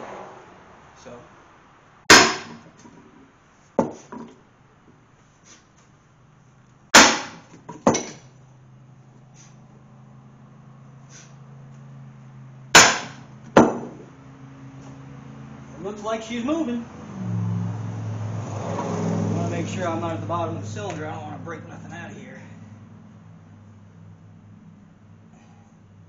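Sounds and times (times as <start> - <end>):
sledgehammer striking metal: 2.1 - 2.8, 7.0 - 8.3, 12.7 - 14.1.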